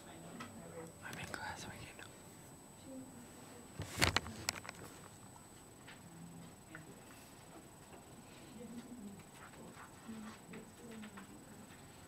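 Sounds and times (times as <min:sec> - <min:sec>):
person whispering: 0:01.0 - 0:02.2.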